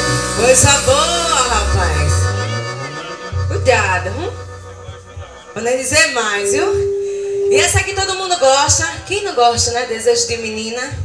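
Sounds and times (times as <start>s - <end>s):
held low bass note: 0.0s - 9.1s
live band through a pa: 0.0s - 10.6s
voice over microphone: 0.4s - 10.5s.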